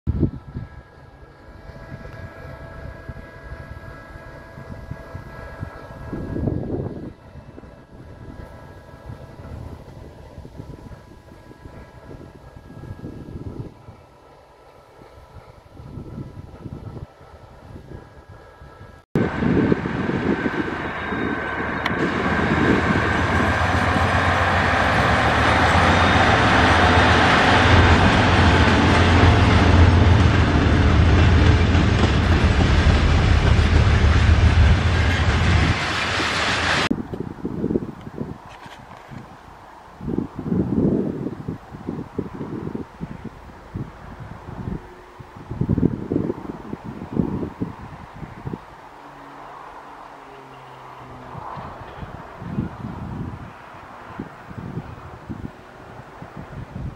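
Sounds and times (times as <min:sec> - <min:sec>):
diesel locomotive engine drone: 0:00.1 - 0:56.9.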